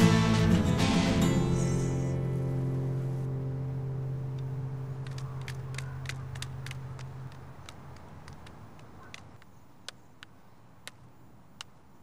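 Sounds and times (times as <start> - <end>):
strummed guitar chord ringing: 0.0 - 5.0.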